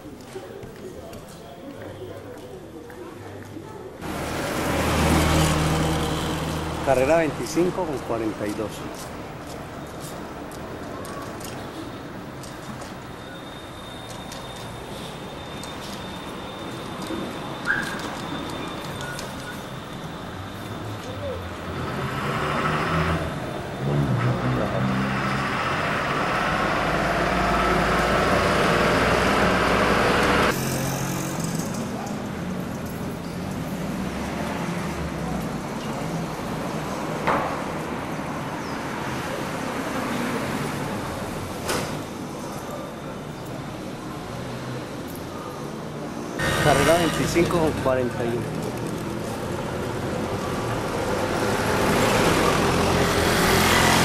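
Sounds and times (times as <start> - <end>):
motor traffic: 1.8 - 54.0
vehicle passing close: 4.0 - 9.0, 21.2 - 41.6, 46.4 - 54.0.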